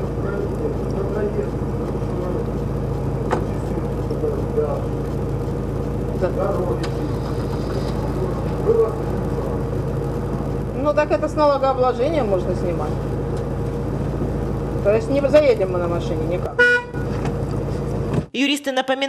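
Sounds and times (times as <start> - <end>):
car engine idling: 0.0 - 18.3.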